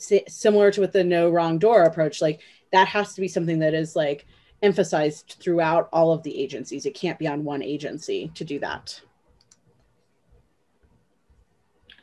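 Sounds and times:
faint clicks: 9.3s - 9.9s.

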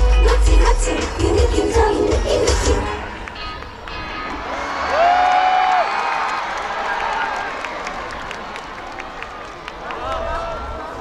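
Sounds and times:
audience cheering and screaming: 4.1s - 11.0s.

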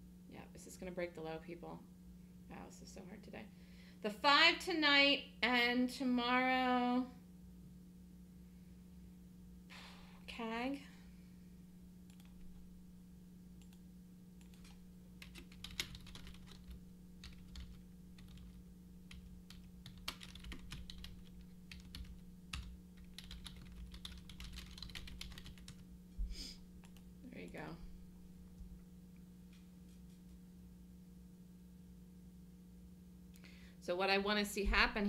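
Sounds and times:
low electrical hum: 0.0s - 35.0s
computer keyboard typing: 12.1s - 12.6s, 14.4s - 25.8s.

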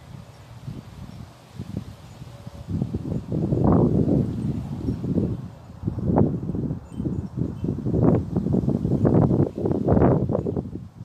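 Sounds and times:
wind gusting over microphone: 0.0s - 11.0s.

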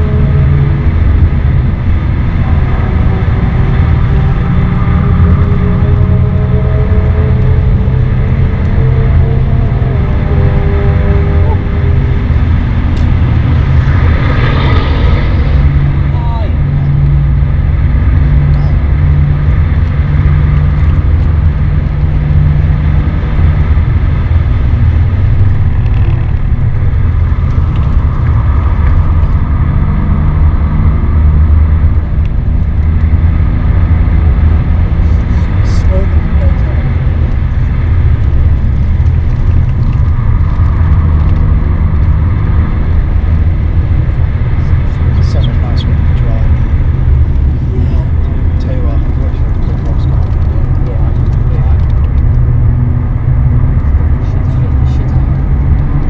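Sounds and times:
car engine working hard: 0.0s - 56.0s
road and wind noise: 0.0s - 56.0s.

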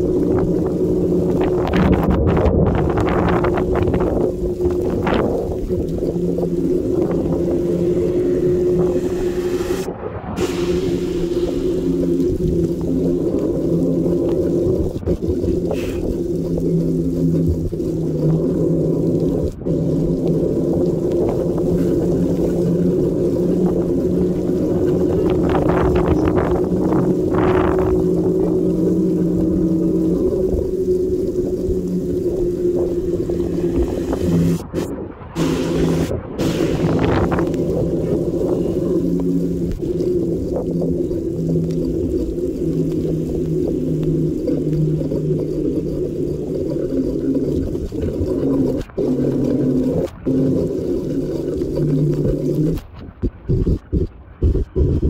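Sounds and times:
droning hum: 0.0s - 55.0s
wind rumble on microphone: 0.0s - 55.0s.

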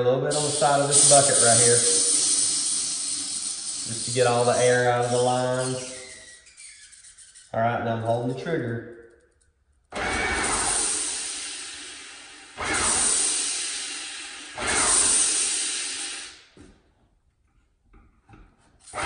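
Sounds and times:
paint sprayer spraying water: 0.3s - 6.4s, 10.4s - 16.5s.

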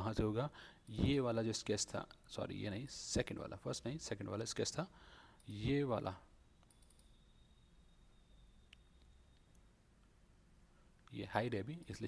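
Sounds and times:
faint high-pitched whine: 0.0s - 12.0s
computer mouse clicks: 6.6s - 7.2s.

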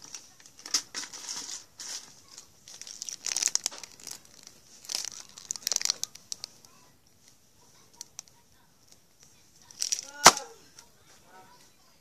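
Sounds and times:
candy wrapper crinkling: 0.0s - 10.9s.

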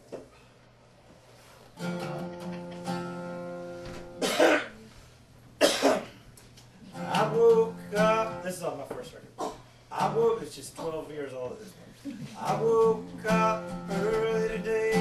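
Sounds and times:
acoustic guitar chord ringing: 1.8s - 4.6s, 6.9s - 8.6s, 12.4s - 15.0s
person coughing: 4.2s - 4.9s, 5.6s - 6.2s, 9.4s - 9.7s
man speaking: 8.4s - 12.4s.

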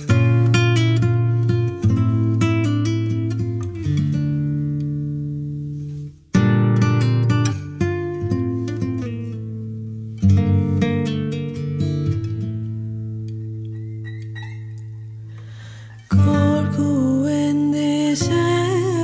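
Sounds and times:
plucked string instrument melody: 0.0s - 19.0s.

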